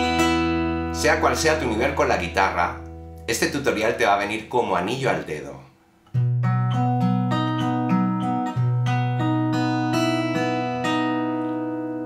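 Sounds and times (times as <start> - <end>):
fingerpicked acoustic guitar: 0.0 - 4.5, 6.0 - 12.0.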